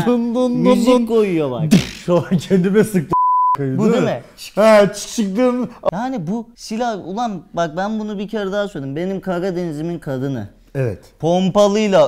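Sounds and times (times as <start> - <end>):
men talking: 0.0 - 12.0
censor bleep: 3.1 - 3.6.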